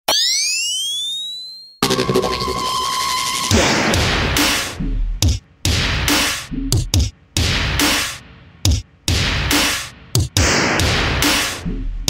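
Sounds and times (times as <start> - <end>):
synthetic tone gliding upward: 0.1 - 3.5
electronic beat: 3.5 - 12.0.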